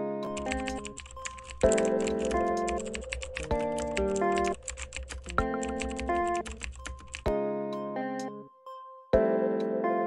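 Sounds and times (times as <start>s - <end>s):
computer keyboard typing: 0.3s - 7.3s.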